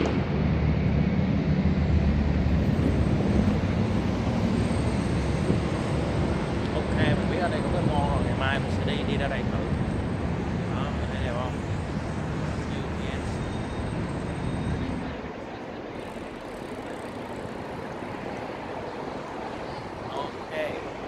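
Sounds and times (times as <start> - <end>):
passing vehicle engine rumble: 0.0 - 21.0
steady street hum: 0.0 - 21.0.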